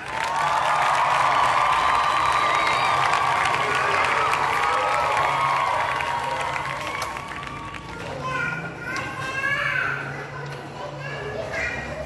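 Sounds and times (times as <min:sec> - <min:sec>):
young child talking: 0:07.8 - 0:12.0.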